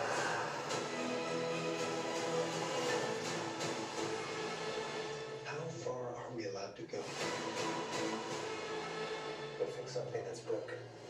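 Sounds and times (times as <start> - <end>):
droning trailer music: 0.0 - 6.2, 7.0 - 11.0.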